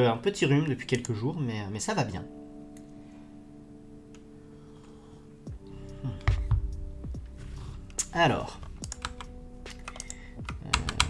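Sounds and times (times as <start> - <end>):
keyboard keystrokes: 8.8 - 11.0.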